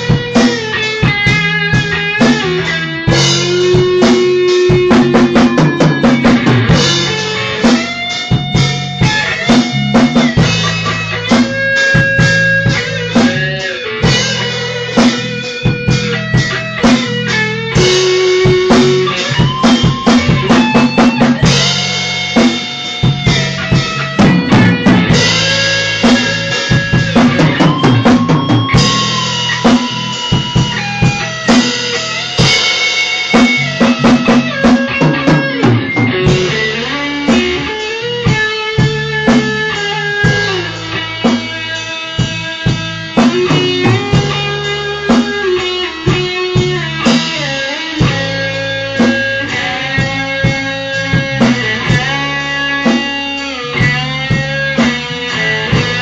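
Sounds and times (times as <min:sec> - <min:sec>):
bass guitar: 0:00.0 - 0:56.0
drum kit steady beat: 0:00.0 - 0:56.0
electric guitar sliding notes: 0:00.0 - 0:56.0.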